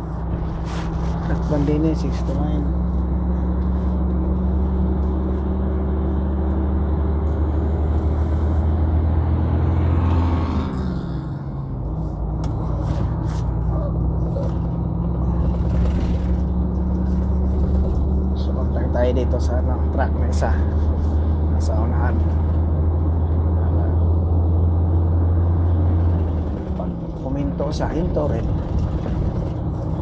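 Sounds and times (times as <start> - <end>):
truck diesel engine droning: 0.0 - 30.0.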